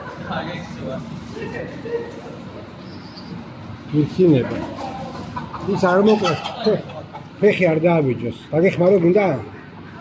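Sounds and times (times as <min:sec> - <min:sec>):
chicken clucking: 0:04.4 - 0:07.4.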